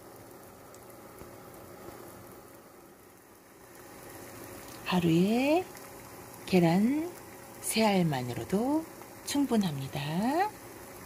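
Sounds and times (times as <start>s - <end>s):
eggs sizzling in a pan: 0.0s - 11.0s.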